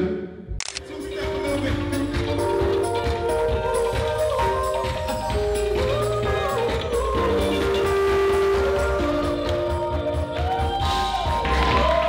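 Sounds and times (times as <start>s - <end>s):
live band music: 0.0s - 12.0s
sustained keyboard chords: 0.0s - 12.0s.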